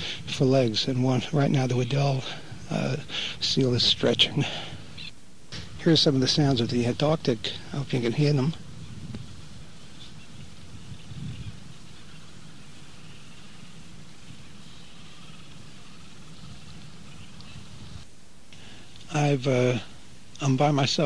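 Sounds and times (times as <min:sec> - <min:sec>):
steady hiss: 0:00.0 - 0:21.0
faint animal calls: 0:08.8 - 0:18.0.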